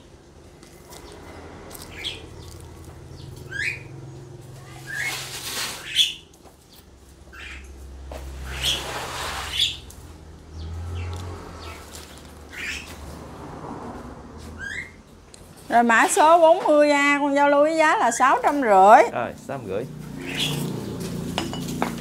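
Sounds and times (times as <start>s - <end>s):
small birds chirping: 0.6s - 13.2s, 18.0s - 21.3s.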